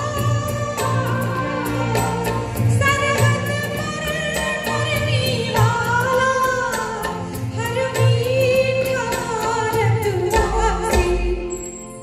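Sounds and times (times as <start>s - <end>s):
woman singing: 0.0s - 11.8s
band accompaniment: 0.0s - 12.0s.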